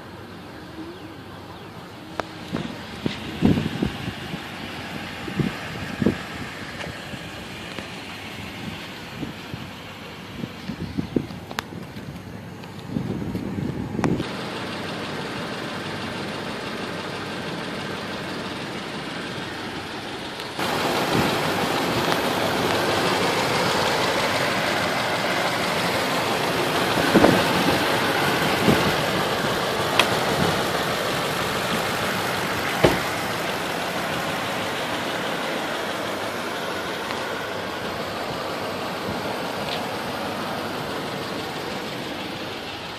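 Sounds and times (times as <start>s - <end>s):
car engine idling: 0.0s - 42.9s.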